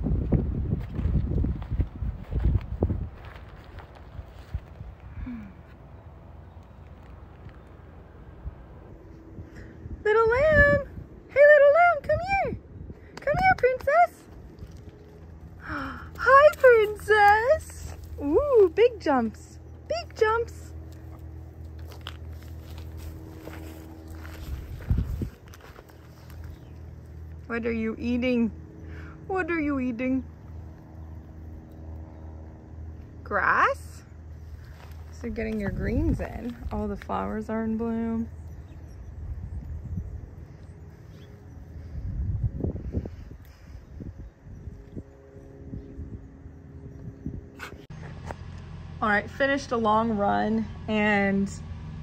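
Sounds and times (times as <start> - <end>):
steady low rumble: 0.0 - 52.0
soft footsteps: 0.7 - 5.0, 20.7 - 27.2
rustling of garden plants: 0.8 - 8.1, 14.2 - 27.4, 34.3 - 38.3
dog rustling through plants: 21.8 - 26.7.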